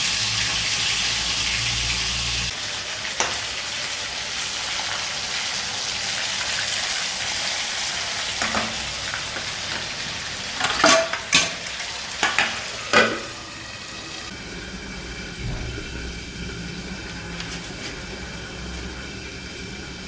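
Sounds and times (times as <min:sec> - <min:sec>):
chicken frying in hot oil: 0:00.0 - 0:20.0
metal spoon clinking utensils: 0:10.6 - 0:11.6.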